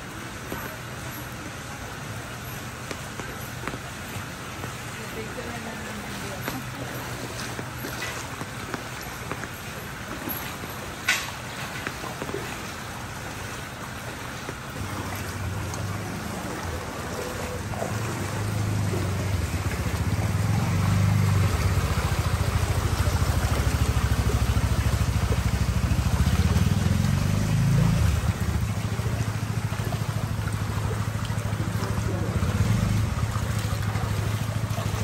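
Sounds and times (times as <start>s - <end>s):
hiss of moving water: 0.0s - 35.0s
motor scooter engine running: 18.4s - 35.0s.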